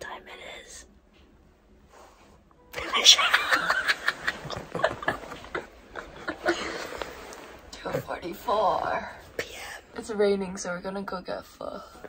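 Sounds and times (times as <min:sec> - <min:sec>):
stifled laughter: 0:02.8 - 0:07.2.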